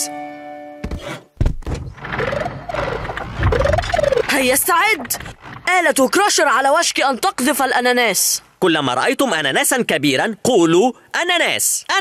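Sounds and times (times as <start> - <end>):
heavy thunk: 0.8 - 2.4.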